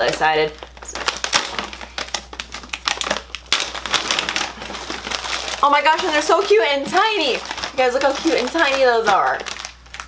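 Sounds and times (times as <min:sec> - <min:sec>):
wrapper crackling as torn open: 0:00.0 - 0:10.0.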